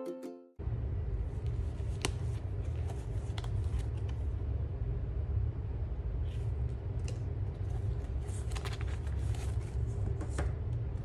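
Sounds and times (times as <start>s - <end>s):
paper envelope rustle: 7.6s - 9.9s.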